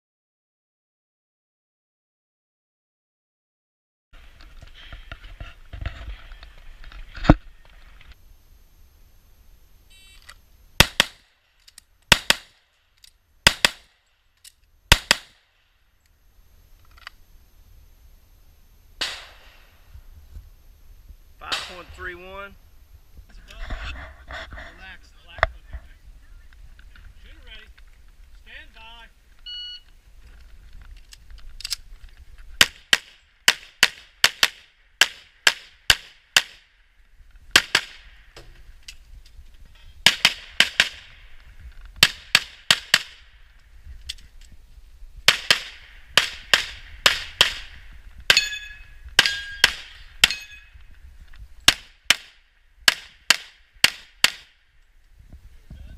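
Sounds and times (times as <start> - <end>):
pistol gunshots: 10.8 - 11.3, 12.1 - 12.6, 13.4 - 14.0, 14.9 - 15.4, 19.0 - 19.6, 21.4 - 22.0, 32.6 - 36.7, 37.5 - 38.2, 40.0 - 41.2, 42.0 - 43.2, 45.3 - 48.6, 49.2 - 50.5, 51.6 - 54.6
shot timer beep: 29.4 - 29.9.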